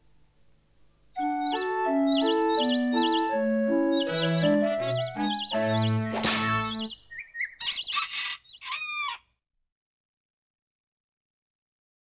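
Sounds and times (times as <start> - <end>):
bird-like chirps and trills: 1.2 - 9.2.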